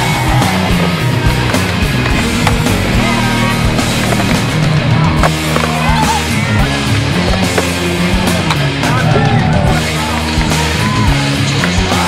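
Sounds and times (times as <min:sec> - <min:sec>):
rock music: 0:00.0 - 0:12.0
skateboard rolling on concrete: 0:00.0 - 0:12.0.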